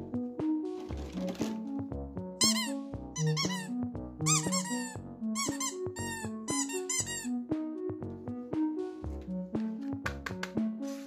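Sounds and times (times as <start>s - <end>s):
keyboard melody music: 0.0s - 11.0s
squeaky toy squeaking: 2.4s - 3.7s, 4.3s - 7.3s.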